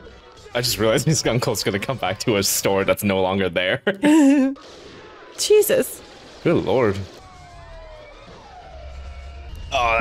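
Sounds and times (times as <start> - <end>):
sirens wailing: 5.6 - 10.0.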